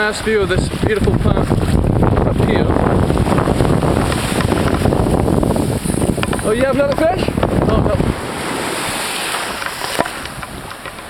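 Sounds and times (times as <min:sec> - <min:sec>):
small waves washing on sand: 0:00.0 - 0:11.0
wind buffeting microphone: 0:00.0 - 0:11.0.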